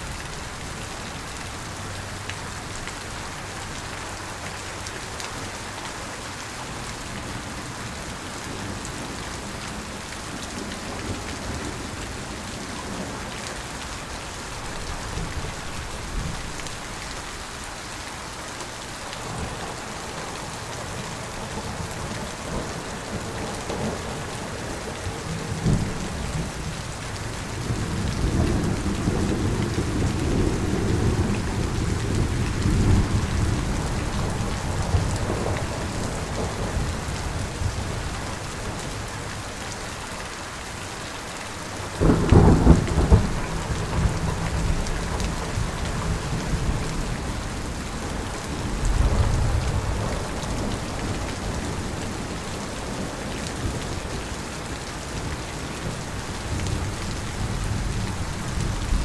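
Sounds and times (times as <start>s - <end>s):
steady rain: 0.0s - 59.0s
low rumble of thunder: 19.2s - 38.9s, 41.9s - 54.3s.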